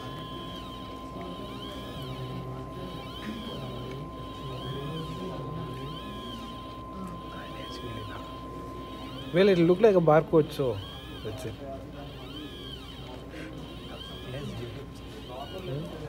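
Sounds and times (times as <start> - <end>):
steady high-pitched hum: 0.0 - 16.0
stepper motors whining: 0.0 - 16.0.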